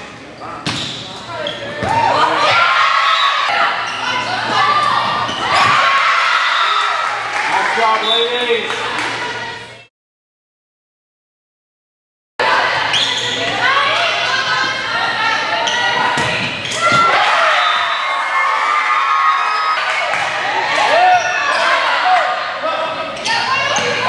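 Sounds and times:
sneakers squeaking on hardwood: 0.6 - 2.1
volleyball hits: 15.9 - 17.4.

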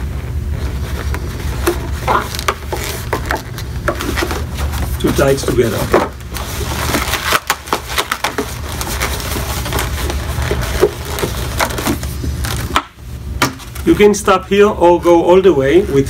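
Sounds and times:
balloons squeaking and crackling: 0.0 - 13.0.

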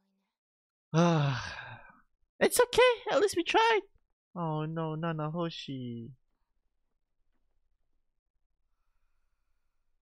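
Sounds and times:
man sighing: 0.9 - 2.0.

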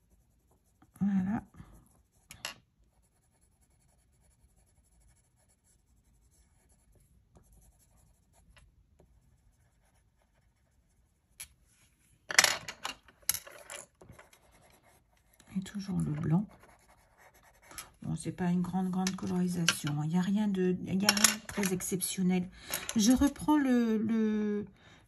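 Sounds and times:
pencil scratching on paper: 0.0 - 1.0, 1.8 - 11.9, 14.1 - 17.9
pencils clacking: 12.3 - 14.4, 19.0 - 20.0, 21.0 - 21.9, 22.6 - 23.4.

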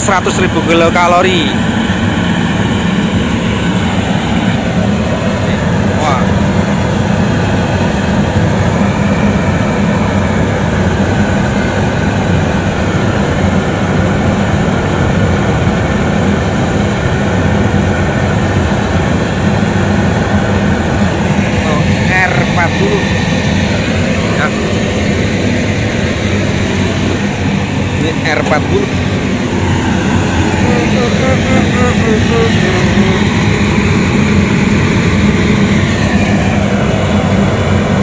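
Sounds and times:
oil burner flame and fan rushing: 0.0 - 38.0.

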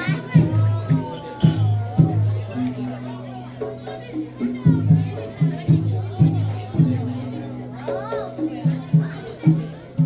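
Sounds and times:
hand drums beating: 0.0 - 10.0
voices in a hall: 0.0 - 10.0.

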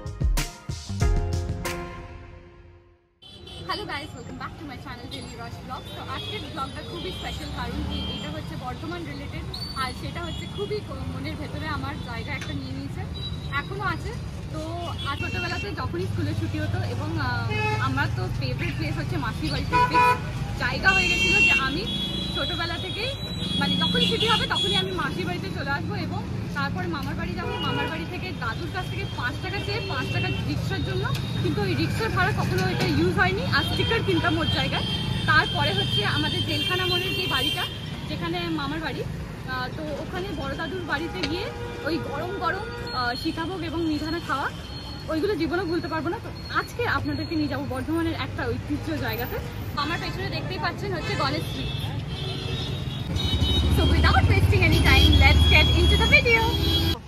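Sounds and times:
traffic engines rumbling: 3.2 - 57.0
motorcycles and rickshaws passing: 3.6 - 57.0
woman talking: 20.6 - 44.5, 45.1 - 51.8, 53.7 - 56.6.

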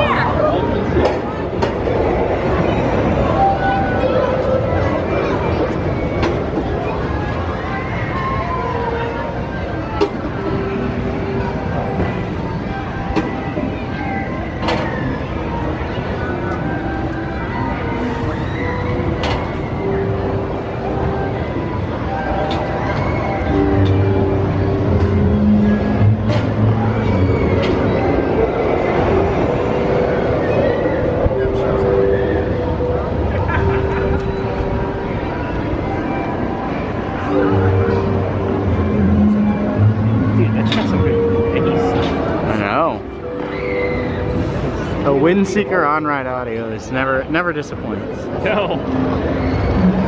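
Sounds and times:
steady mechanical hum: 0.0 - 50.0
swing ride and crowd din: 0.0 - 50.0.

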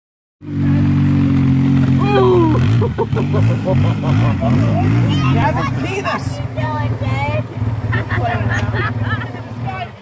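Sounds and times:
vehicle engine idling: 0.4 - 10.0.

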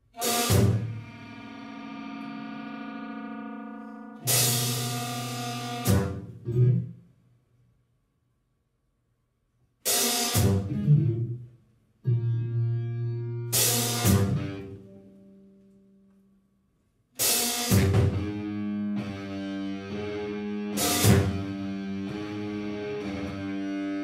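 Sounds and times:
big band ensemble hits: 0.1 - 1.3, 4.2 - 6.4, 9.9 - 10.8, 13.6 - 14.6, 17.2 - 18.4, 20.7 - 22.4
drum kit and cymbal crashes: 0.2 - 0.9, 4.3 - 6.2, 9.9 - 10.7, 13.6 - 14.4, 17.2 - 18.2, 20.8 - 21.4.

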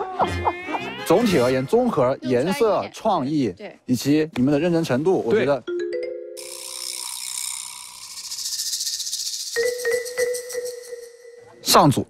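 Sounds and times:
high fluttering suspense shimmer: 6.4 - 11.5.

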